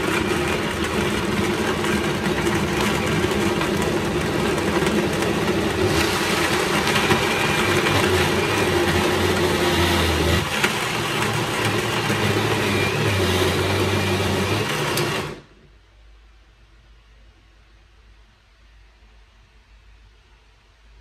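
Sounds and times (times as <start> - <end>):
blender motor running: 0.0 - 15.5.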